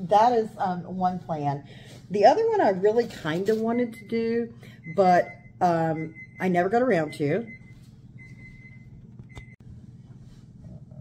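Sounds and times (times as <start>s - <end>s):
oven timer beeping: 3.9s - 9.6s.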